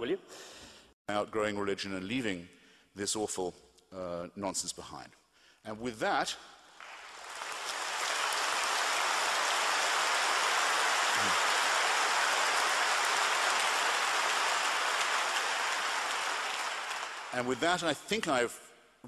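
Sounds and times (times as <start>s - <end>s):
audience applauding: 6.7s - 18.2s.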